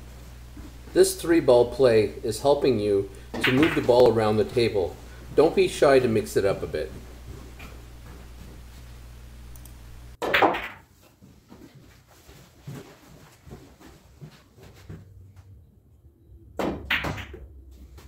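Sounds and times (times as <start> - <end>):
billiard balls clicking: 3.3 - 4.2
cue and balls striking: 3.4 - 4.1, 10.2 - 10.9, 16.6 - 17.5.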